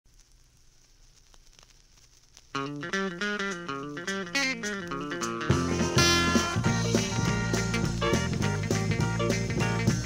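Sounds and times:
vinyl record hiss: 0.0 - 10.0
vinyl clicks and crackles: 0.1 - 5.5.

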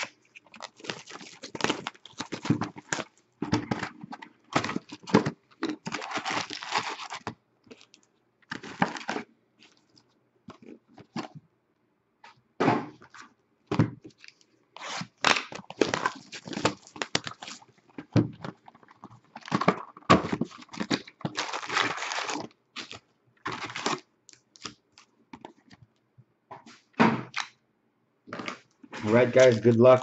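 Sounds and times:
foil packs crinkling: 0.0 - 11.4, 14.0 - 25.8, 28.3 - 30.0.

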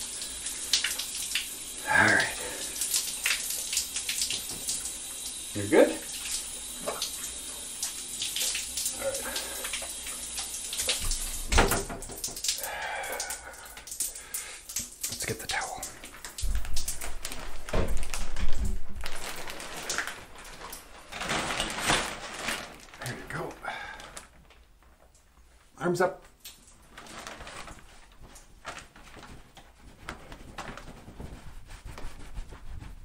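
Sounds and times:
bath water sloshing and splashing: 0.0 - 25.7, 26.3 - 33.0.

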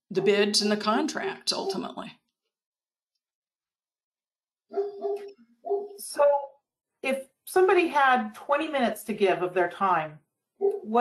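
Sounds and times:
dog barking: 1.5 - 2.0, 4.7 - 6.0, 10.6 - 10.9.

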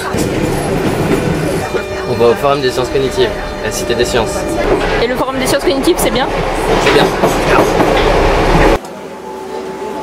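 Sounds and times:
subway train carriage rattling: 0.0 - 10.0.

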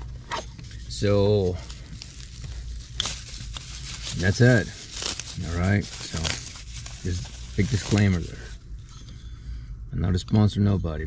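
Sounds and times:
bubble wrap crackle: 0.0 - 8.7
bubble wrap crinkling: 0.0 - 8.7.

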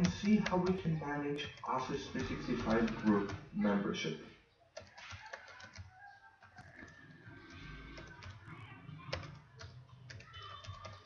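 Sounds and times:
computer keyboard keystrokes: 0.0 - 0.9, 4.8 - 8.5, 9.1 - 11.0.

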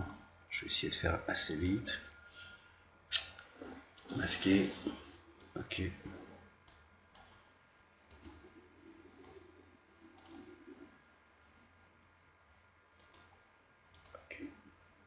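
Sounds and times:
computer mouse clicks: 6.6 - 7.4, 8.1 - 8.5, 9.1 - 9.5, 10.1 - 10.6, 13.0 - 14.5.

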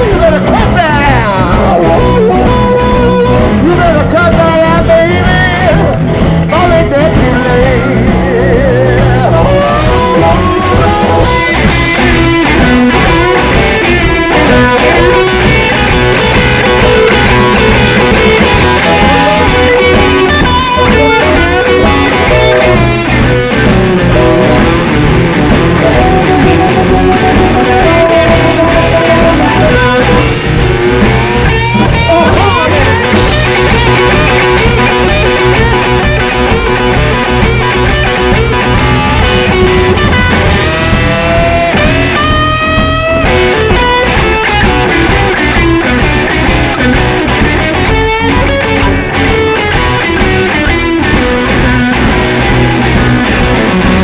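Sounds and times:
blues-rock band playing: 0.0 - 54.0
amplified harmonica: 7.9 - 54.0.

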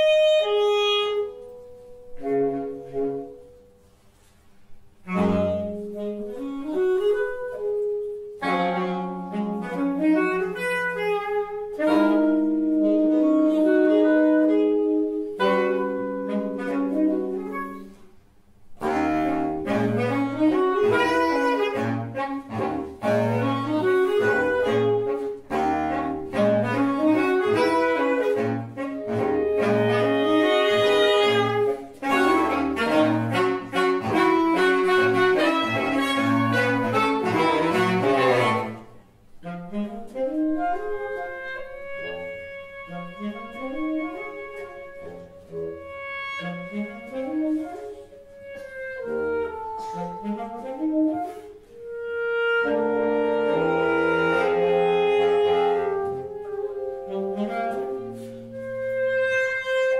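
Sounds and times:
baritone saxophone bass line: 0.0 - 3.6, 4.9 - 18.0, 18.7 - 59.9
saxophone ensemble playing: 0.0 - 3.7, 4.9 - 59.9.

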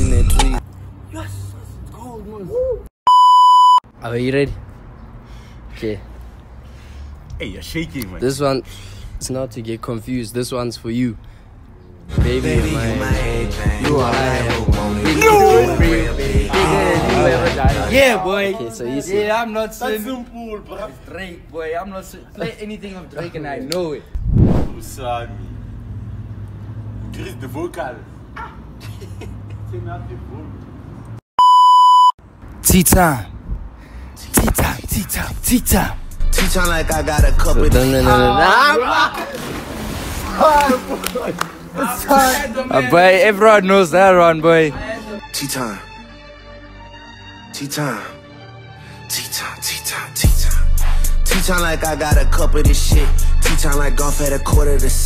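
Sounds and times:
censor bleep: 3.1 - 3.8, 31.4 - 32.2
young man's sing-song voice: 12.1 - 18.0, 34.4 - 38.4, 49.1 - 55.0.

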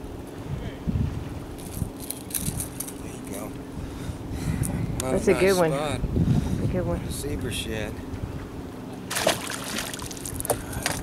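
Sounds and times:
sharp knocks against boat: 8.9 - 11.0
fish splashing into water: 9.1 - 11.0.

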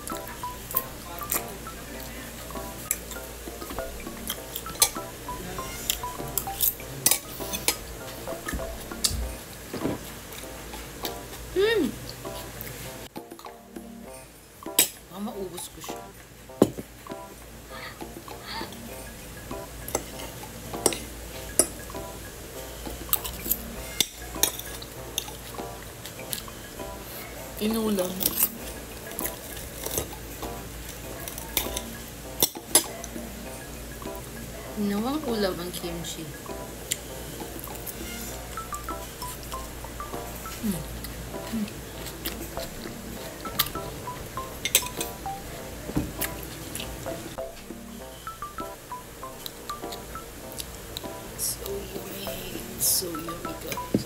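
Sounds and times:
background music: 0.0 - 54.0
cutlery clinking on a plate: 23.1 - 25.4, 31.2 - 33.0, 44.6 - 45.2.

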